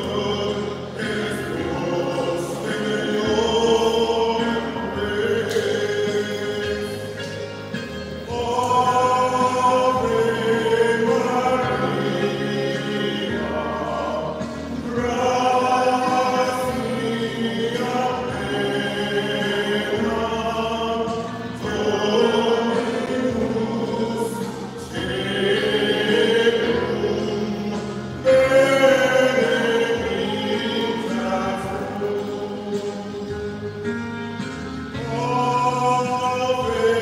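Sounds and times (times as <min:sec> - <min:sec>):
congregation singing a hymn: 0:00.0 - 0:37.0
man singing at microphone: 0:00.0 - 0:37.0.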